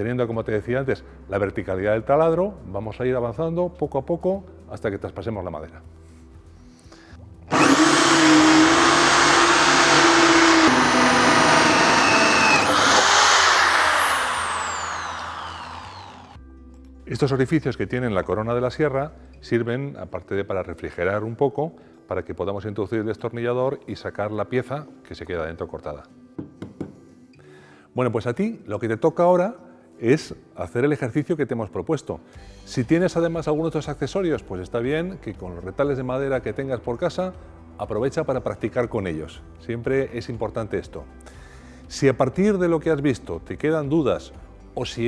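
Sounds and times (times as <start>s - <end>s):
faint background music: 0.0s - 10.6s, 14.4s - 45.0s
electric drill cutting wood: 7.5s - 16.4s
tool knocks on wooden board: 26.4s - 27.0s.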